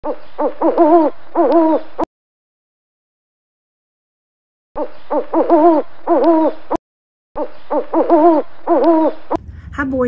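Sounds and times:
owl calling: 4.8s - 6.7s, 7.4s - 9.4s.

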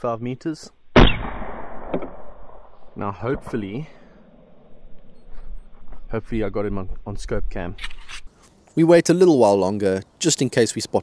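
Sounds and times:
rifle shot: 0.9s - 5.0s.

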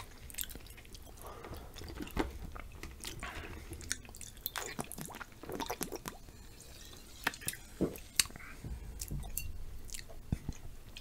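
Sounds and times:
wet chewing and lip smacks: 0.0s - 1.2s, 3.8s - 6.2s, 9.0s - 11.0s.

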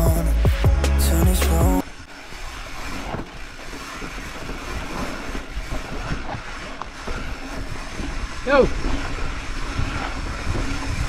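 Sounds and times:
bike tyre noise on dirt: 1.8s - 11.0s
bike clicks and rattles: 2.2s - 11.0s
wind rush over microphone: 2.8s - 11.0s.

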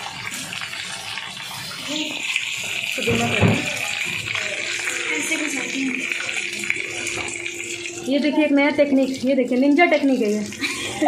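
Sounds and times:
hot oil sizzling: 0.0s - 11.0s.

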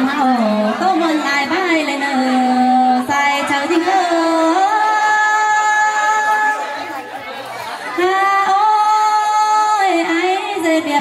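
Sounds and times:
woman singing through loudspeaker: 0.0s - 6.6s, 8.0s - 11.0s.

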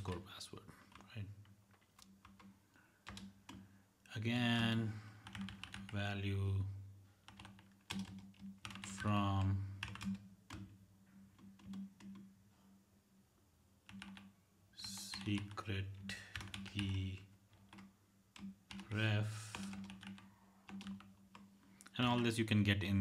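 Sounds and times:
typing on computer keyboard: 0.9s - 3.6s, 5.2s - 6.0s, 7.2s - 10.7s, 11.3s - 12.3s, 13.9s - 21.5s.

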